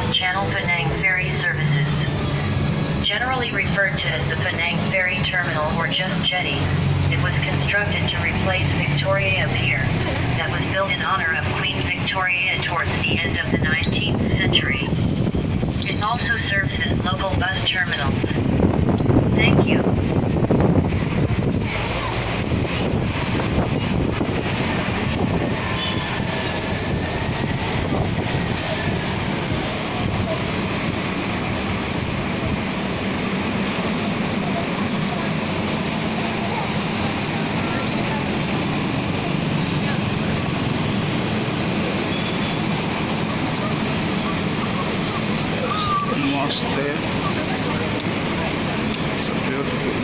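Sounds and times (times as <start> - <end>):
bus engine and tyre rumble: 0.0 - 50.0
street traffic: 0.0 - 50.0.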